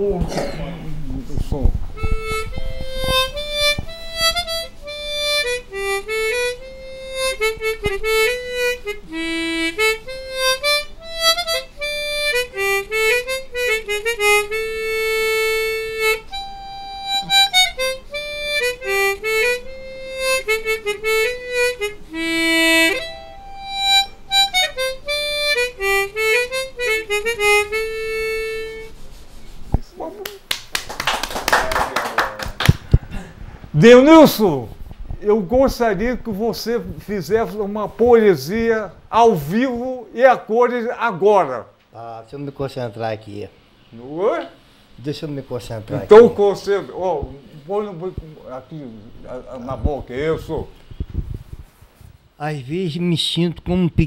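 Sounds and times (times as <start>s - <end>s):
noise: 0.0s - 54.0s
harmonica melody: 2.0s - 29.7s.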